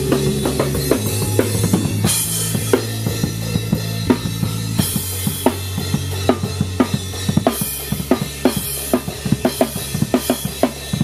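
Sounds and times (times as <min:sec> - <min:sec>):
low held bass notes: 0:00.0 - 0:10.2
drum kit playing: 0:00.0 - 0:11.0.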